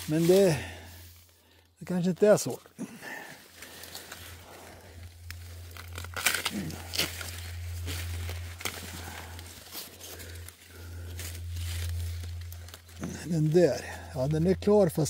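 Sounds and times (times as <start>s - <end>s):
steady low hum: 0.0s - 1.8s, 2.5s - 15.0s
maize leaves rustling and crackling: 0.0s - 15.0s.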